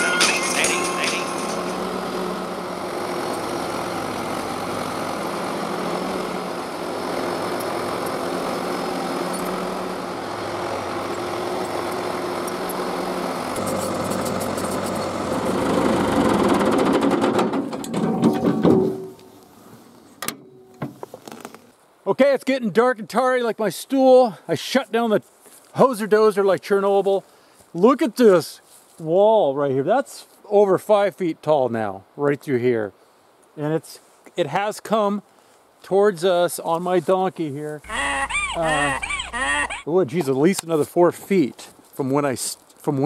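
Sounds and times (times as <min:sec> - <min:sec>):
bulldozer diesel engine: 0:00.0 - 0:19.4, 0:37.8 - 0:39.9
blade pushing dirt and rock: 0:07.3 - 0:17.2.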